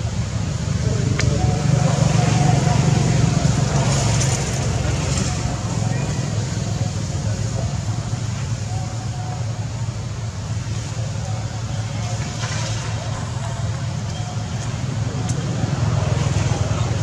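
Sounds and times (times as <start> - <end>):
faint indistinct voices: 0.0 - 17.0
low outdoor rumble: 0.0 - 17.0.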